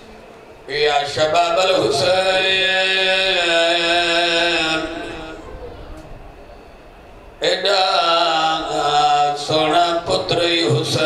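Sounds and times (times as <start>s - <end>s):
man chanting mournfully: 0.7s - 5.6s, 7.4s - 11.0s.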